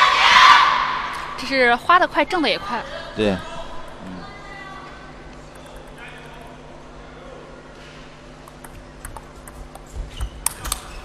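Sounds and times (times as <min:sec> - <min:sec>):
table tennis ball clicking: 0:05.5 - 0:06.4, 0:08.4 - 0:10.9.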